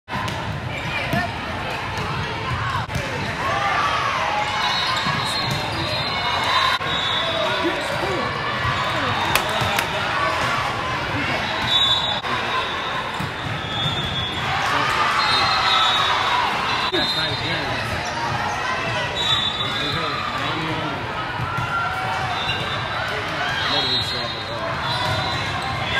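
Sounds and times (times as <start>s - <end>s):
volleyball hits: 8.8s - 10.6s
shoe squeaks: 9.2s - 10.0s.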